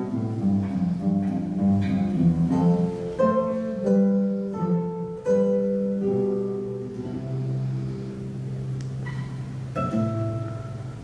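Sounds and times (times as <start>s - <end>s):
guitar and oud plucked notes: 0.0s - 11.0s.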